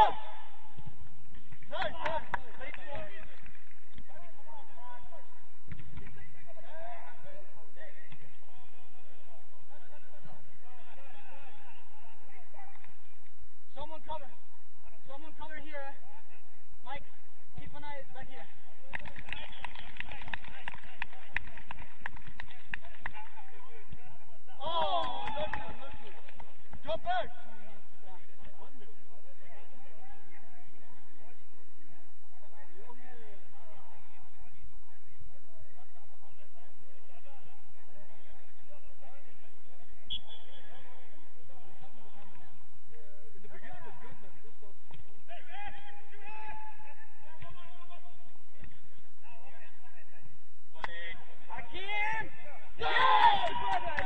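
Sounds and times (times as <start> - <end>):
players shouting: 51.5 - 54.0.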